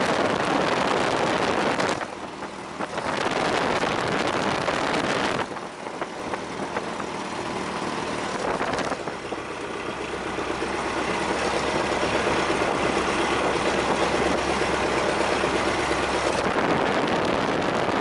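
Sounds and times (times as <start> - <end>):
biplane engine running: 0.0 - 18.0.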